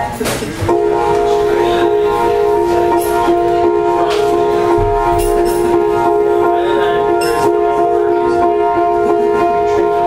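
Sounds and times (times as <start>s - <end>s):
held keyboard chord: 0.6s - 10.0s
person speaking: 0.7s - 7.6s.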